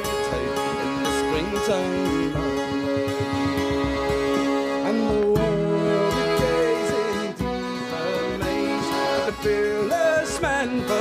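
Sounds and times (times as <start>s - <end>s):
accordion melody: 0.0s - 11.0s
acoustic guitar: 0.0s - 11.0s
frame drum: 2.0s - 7.1s.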